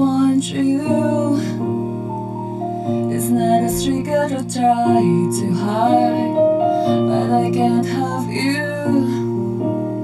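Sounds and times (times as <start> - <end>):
slow pop ballad backing track: 0.0 - 10.0.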